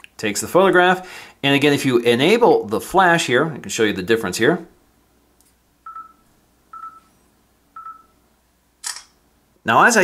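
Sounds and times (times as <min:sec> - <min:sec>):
camera shutter sound: 0:08.8 - 0:09.2.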